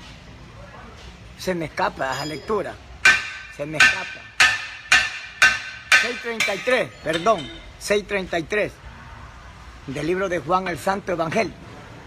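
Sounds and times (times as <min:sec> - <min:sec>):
hammer blows on metal: 0:03.0 - 0:07.8.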